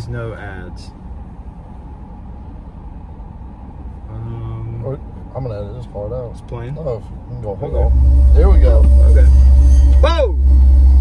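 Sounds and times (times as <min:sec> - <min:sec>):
low rumble in car cabin: 0:00.0 - 0:11.0.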